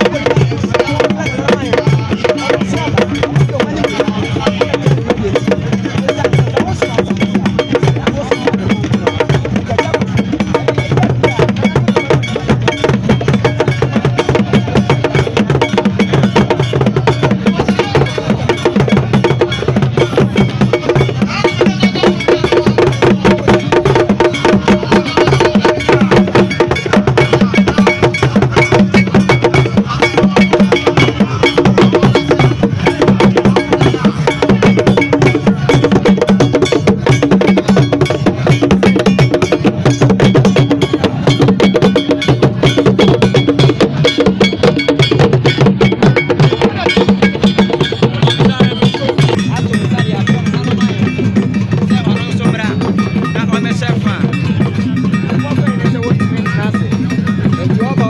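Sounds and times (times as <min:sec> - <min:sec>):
bell or wood-block strokes: 0:00.0 - 0:58.0
fast drumming: 0:00.0 - 0:58.0.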